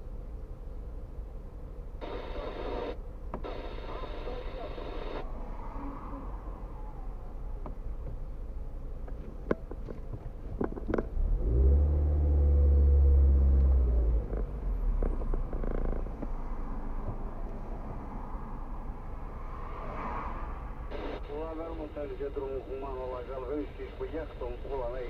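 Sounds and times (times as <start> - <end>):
car engine and road rumble: 0.0 - 25.0
deeper engine drone: 0.0 - 25.0.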